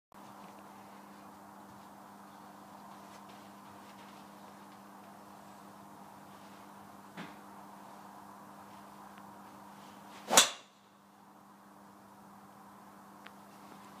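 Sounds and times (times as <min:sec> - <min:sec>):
steady low hum: 0:00.2 - 0:14.0
golf club striking ball: 0:10.3 - 0:10.9.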